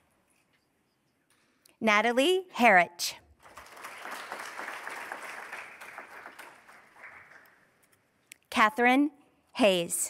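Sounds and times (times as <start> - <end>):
audience applauding: 3.4 - 7.8.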